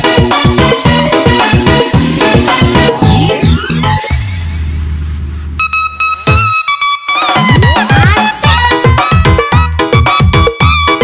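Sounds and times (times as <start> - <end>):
bright synth stabs: 5.6 - 9.5.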